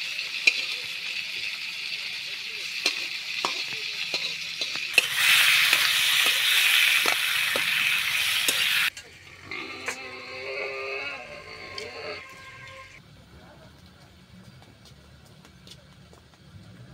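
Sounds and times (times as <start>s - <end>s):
tomatoes sizzling in hot oil: 0.0s - 9.0s
metal spatula tapping and scraping pan: 2.8s - 5.1s.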